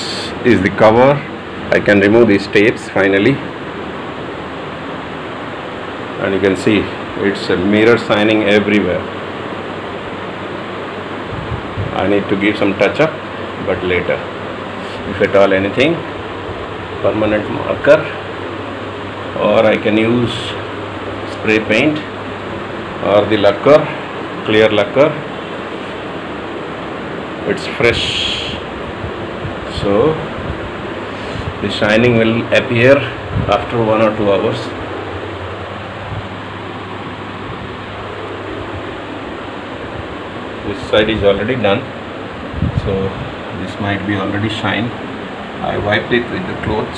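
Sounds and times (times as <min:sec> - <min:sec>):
low hum: 0:00.0 - 0:46.9
steady background hiss: 0:00.0 - 0:46.9.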